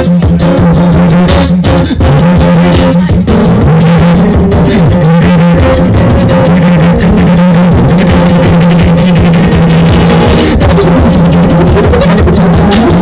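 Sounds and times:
acoustic guitar: 0.0 - 13.0
beatboxing: 0.0 - 13.0.

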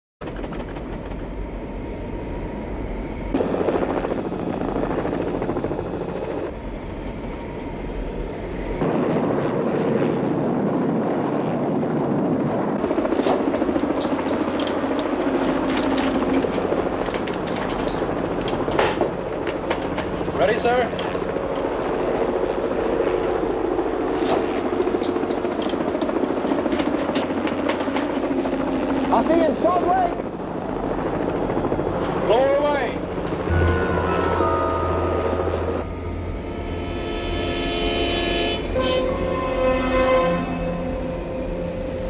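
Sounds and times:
helicopter rotor and engine: 0.2 - 42.0
rushing wind: 0.2 - 42.0.

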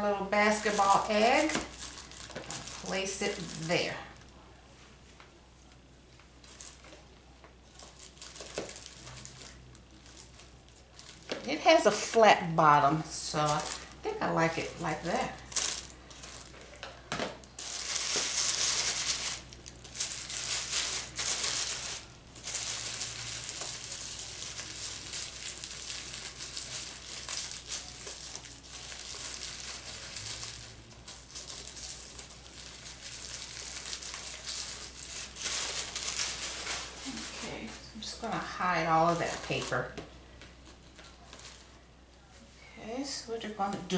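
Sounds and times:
tissue paper crinkling: 0.4 - 4.2, 6.4 - 12.1, 13.2 - 16.8, 17.4 - 38.3, 40.6 - 42.4.

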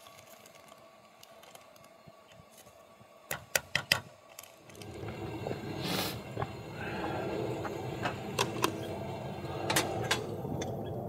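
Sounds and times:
camp stove burner rumbling: 0.0 - 11.0
short hiss: 5.8 - 6.3.

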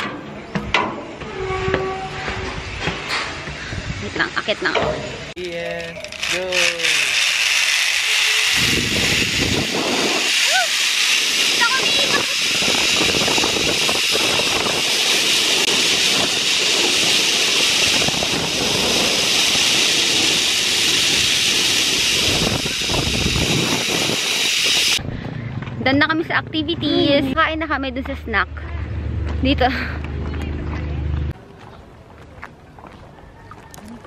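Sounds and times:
wind rushing over microphone: 2.2 - 4.3, 8.6 - 25.9
zipline trolley running on cable: 5.4 - 25.0.

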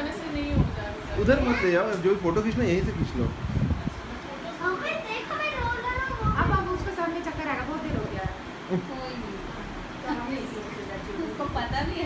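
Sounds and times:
young children chattering: 1.2 - 2.2, 3.8 - 7.4.

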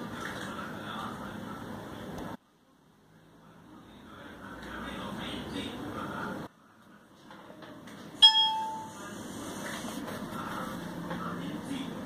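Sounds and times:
bell-like chime: 8.2 - 8.9.

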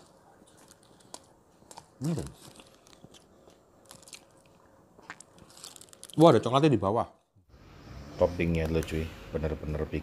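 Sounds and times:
man chewing toast: 0.0 - 6.2.

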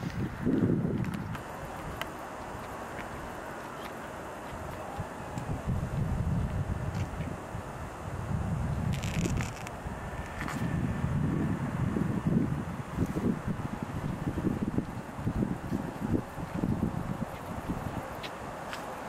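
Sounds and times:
wind buffeting microphone: 0.0 - 3.5, 4.2 - 19.0.

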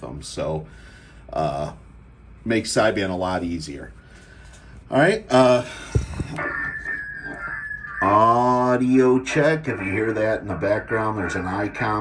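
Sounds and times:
high-pitched radio whistle: 5.9 - 12.0.

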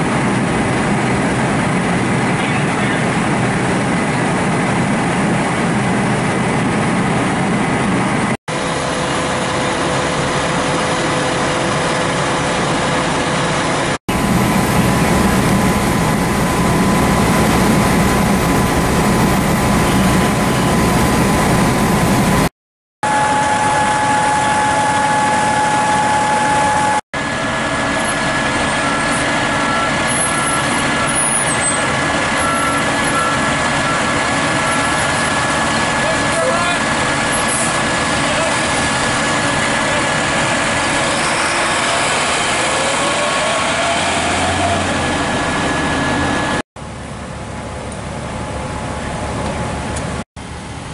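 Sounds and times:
diesel engines idling: 0.0 - 22.5, 27.2 - 50.9.

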